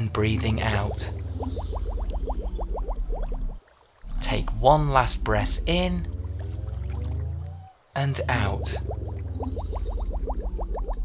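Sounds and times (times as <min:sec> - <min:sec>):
cartoon bubbles bloops: 0:00.4 - 0:11.0.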